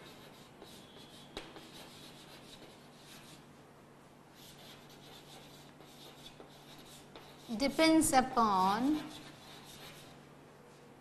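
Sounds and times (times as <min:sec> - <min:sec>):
chalk tap: 0:00.0 - 0:03.2, 0:04.6 - 0:07.8
chalk scratching on blackboard: 0:00.0 - 0:03.5, 0:04.4 - 0:08.1, 0:08.8 - 0:10.2.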